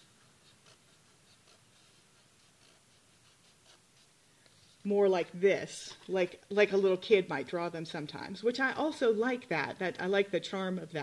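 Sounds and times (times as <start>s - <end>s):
pen scratching on paper: 0.0s - 4.2s
woman speaking: 4.8s - 11.0s.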